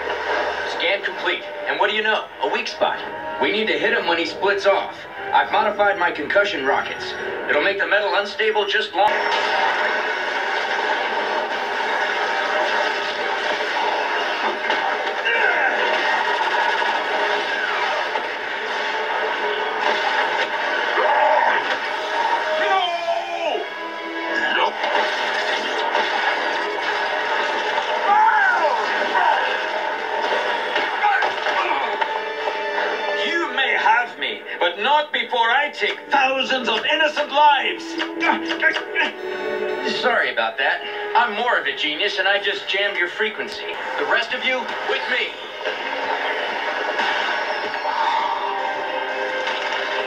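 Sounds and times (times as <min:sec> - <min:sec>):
background music from tv: 0:00.0 - 0:50.0
fight sound effects: 0:09.1 - 0:22.2, 0:24.6 - 0:32.1.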